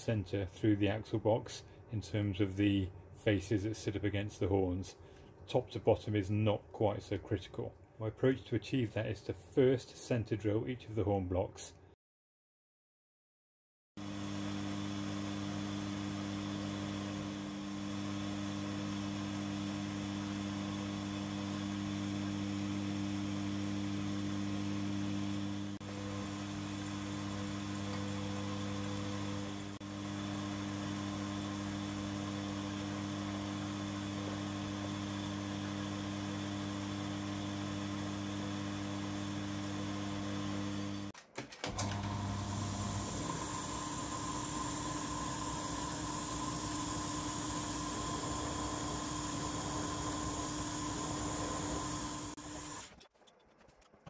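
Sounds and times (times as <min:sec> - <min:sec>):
milling machine humming: 0:14.0 - 0:41.1, 0:41.7 - 0:53.0.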